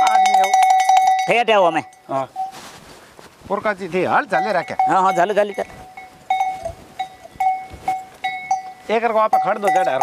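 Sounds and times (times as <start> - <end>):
small bell clinking: 0.0 - 2.6, 4.3 - 10.0.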